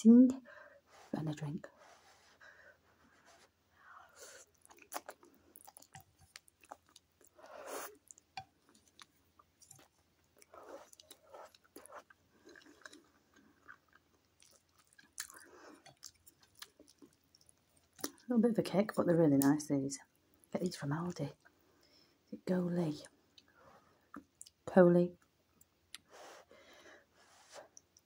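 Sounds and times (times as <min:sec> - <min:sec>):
chewing noodles: 0:04.3 - 0:18.3.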